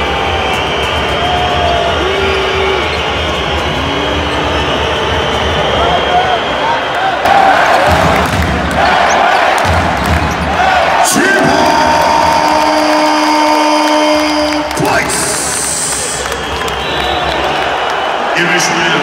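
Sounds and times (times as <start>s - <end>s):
crowd shouting: 0.0s - 19.0s.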